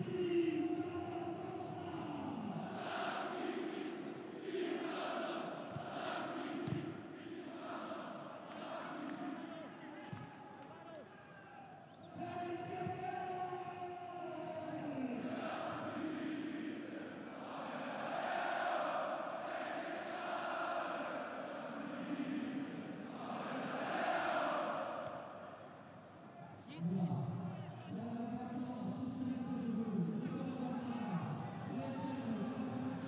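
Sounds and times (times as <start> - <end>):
stadium crowd chanting and singing: 0.0 - 33.0.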